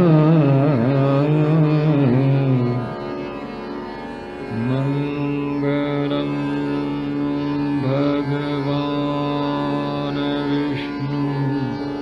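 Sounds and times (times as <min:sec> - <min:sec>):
man singing classical vocal: 0:00.0 - 0:03.1, 0:04.5 - 0:12.0
steady drone: 0:00.0 - 0:12.0.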